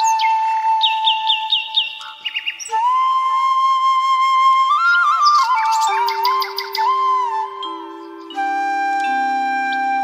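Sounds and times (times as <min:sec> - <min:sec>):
flute long low note: 0:00.0 - 0:01.7, 0:02.7 - 0:10.0
bird chirping: 0:00.0 - 0:03.1, 0:04.7 - 0:10.0.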